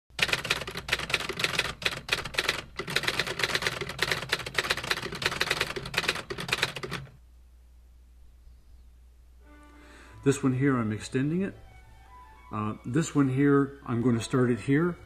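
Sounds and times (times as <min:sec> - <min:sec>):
rapid sharp taps: 0:00.2 - 0:07.1.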